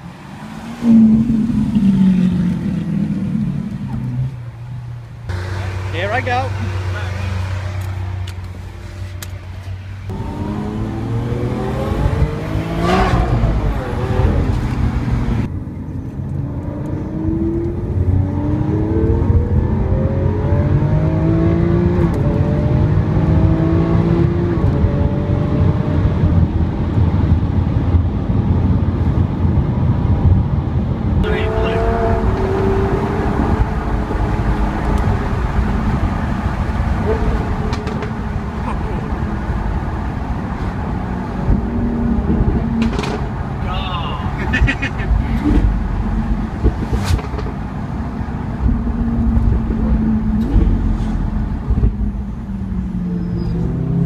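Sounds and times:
car engine revving through gears: 0:10.1 - 0:15.5, 0:16.4 - 0:26.3, 0:31.2 - 0:39.2.

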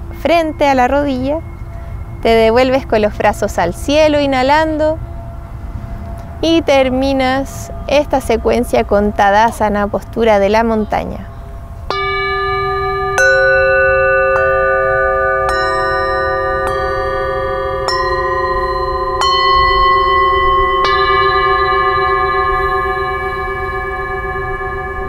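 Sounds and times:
singing bowls struck with mallet: 0:00.0 - 0:25.0.

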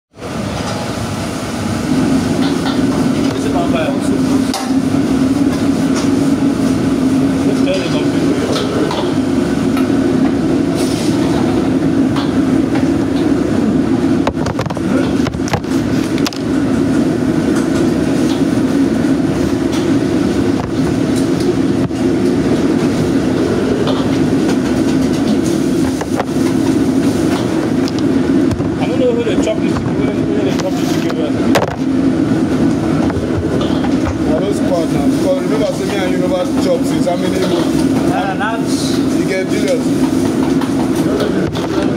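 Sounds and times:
gas burner and extraction roar: 0:00.1 - 0:41.9.

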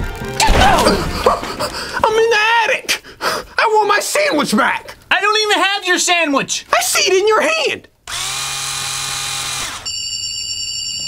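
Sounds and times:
electronic buzzing whir: 0:08.1 - 0:09.9.

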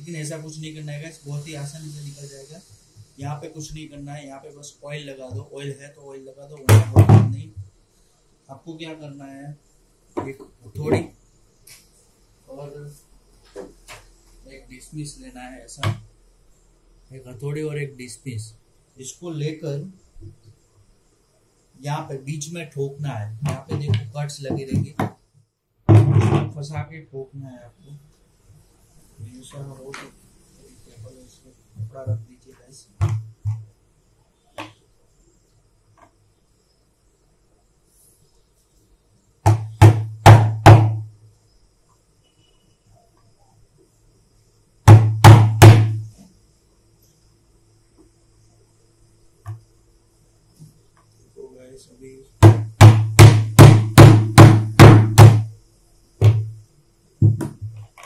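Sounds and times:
man talking: 0:00.0 - 0:02.6, 0:03.2 - 0:07.6, 0:08.5 - 0:09.6, 0:10.2 - 0:11.1, 0:12.5 - 0:13.0, 0:14.5 - 0:15.9, 0:17.1 - 0:20.0, 0:21.8 - 0:25.0, 0:26.5 - 0:28.0, 0:29.2 - 0:30.1, 0:30.7 - 0:32.9, 0:51.4 - 0:52.3.

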